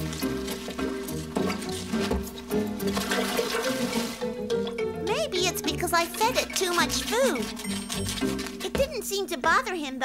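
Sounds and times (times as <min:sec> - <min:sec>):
background music: 0:00.0 - 0:10.0
food pouring into a tub: 0:02.8 - 0:04.3.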